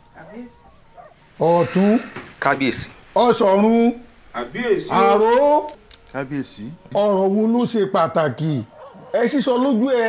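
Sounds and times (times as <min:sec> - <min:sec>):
man speaking: 0:01.4 - 0:10.0.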